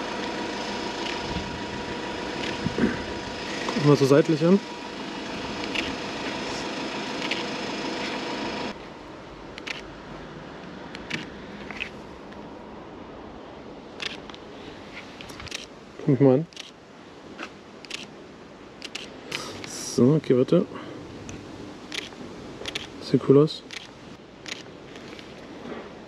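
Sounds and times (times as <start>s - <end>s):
steady machine-like hum: 0.0s - 10.4s
camera shutter clicks: 5.6s - 6.0s, 7.2s - 7.5s, 9.6s - 9.9s, 11.0s - 11.9s, 14.0s - 14.2s, 16.5s - 16.8s, 17.8s - 18.1s, 18.8s - 19.7s, 21.9s - 22.9s, 23.7s - 25.3s.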